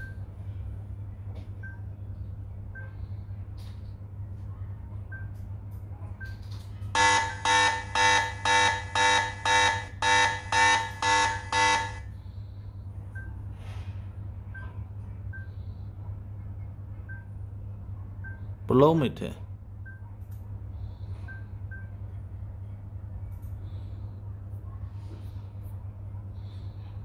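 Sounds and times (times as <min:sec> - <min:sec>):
steady low hum: 0:00.0 - 0:27.0
phone alarm beeping: 0:07.0 - 0:12.0.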